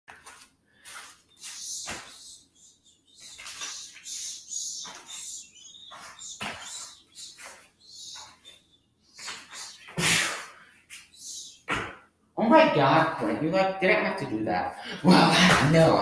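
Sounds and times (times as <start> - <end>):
bare feet thudding on mat: 5.9 - 7.6, 11.7 - 12.0.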